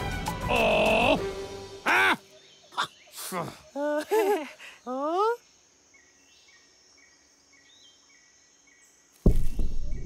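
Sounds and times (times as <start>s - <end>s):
heavy thud on ground: 9.2s - 10.0s.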